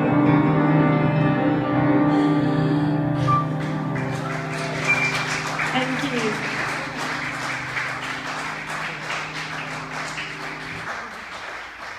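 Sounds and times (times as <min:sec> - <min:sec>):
audience applauding: 0:03.3 - 0:11.9.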